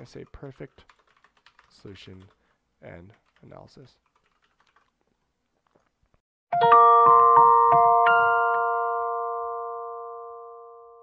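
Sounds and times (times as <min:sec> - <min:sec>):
bell-like mallet chord ringing: 0:06.5 - 0:11.0.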